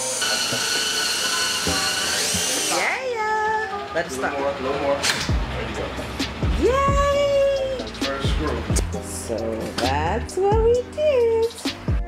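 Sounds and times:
cordless drill motor whine: 0.0s - 3.0s.

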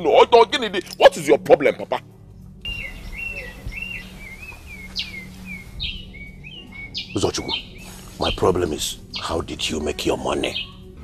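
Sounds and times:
steady low hum: 2.0s - 11.0s
bird chirping: 2.2s - 11.0s
bird down-sweeping calls: 2.6s - 9.4s.

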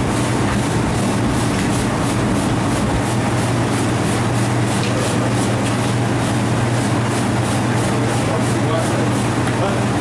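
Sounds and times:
mechanical hum and hiss: 0.0s - 10.0s.

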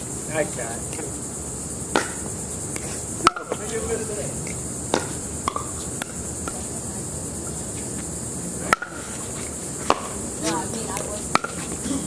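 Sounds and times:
high insect chirring: 0.0s - 12.0s.

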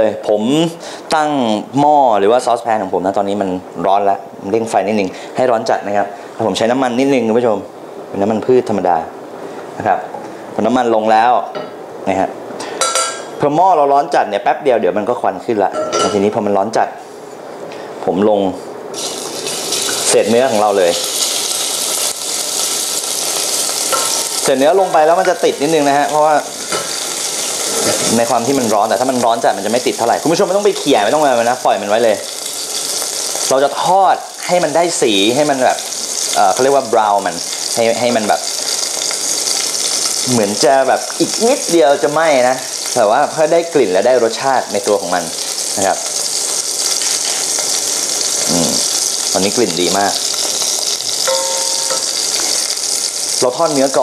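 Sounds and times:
beef sizzling in hot oil: 18.9s - 54.0s.

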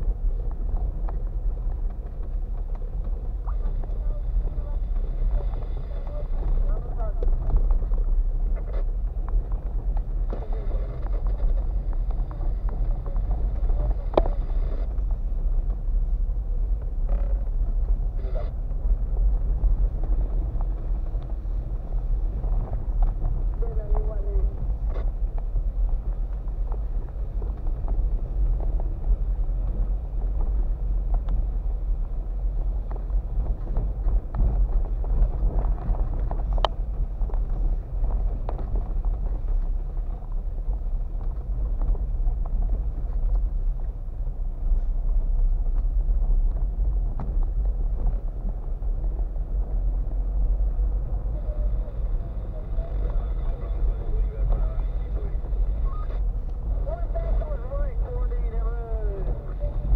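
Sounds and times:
car cabin rumble on rough road: 0.0s - 59.9s.

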